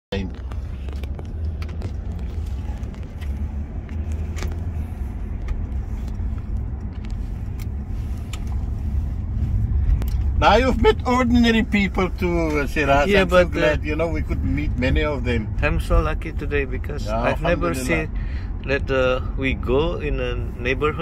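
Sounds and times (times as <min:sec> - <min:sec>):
car road and engine rumble: 0:00.1 - 0:21.0.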